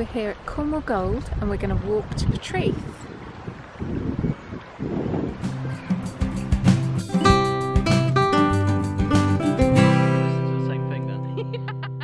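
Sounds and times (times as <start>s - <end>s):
wind buffeting microphone: 0.0s - 6.6s.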